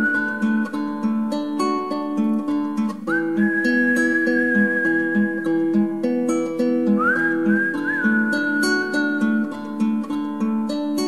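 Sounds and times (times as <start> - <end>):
fingerpicked acoustic guitar: 0.0 - 11.0.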